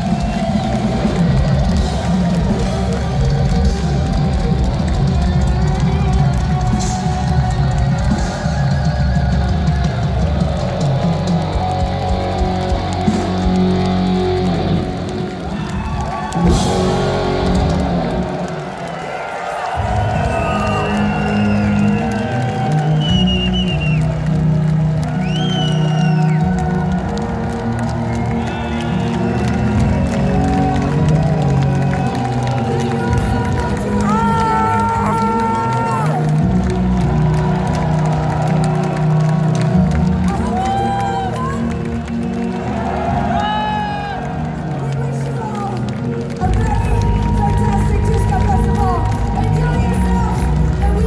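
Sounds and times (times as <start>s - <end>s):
loud metal band playing live: 0.0s - 18.6s
crowd cheering and shouting: 0.0s - 51.0s.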